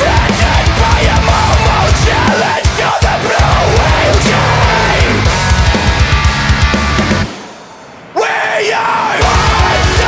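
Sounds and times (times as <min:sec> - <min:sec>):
metal band with pounding drums: 0:00.0 - 0:10.0
screamed vocal: 0:08.2 - 0:10.0.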